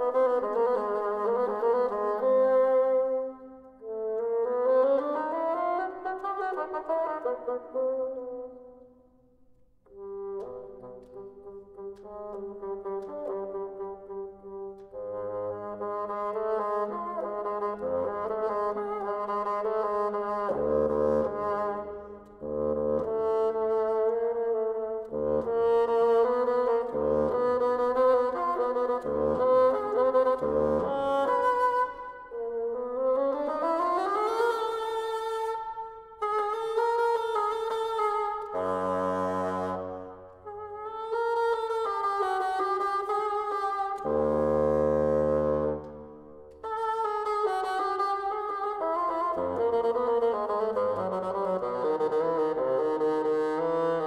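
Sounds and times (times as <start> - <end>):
bassoon playing: 0.0 - 8.6, 9.9 - 54.0.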